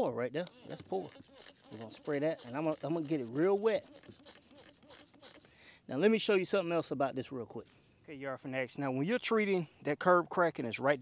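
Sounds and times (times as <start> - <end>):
sprayer hissing: 0.5 - 5.5.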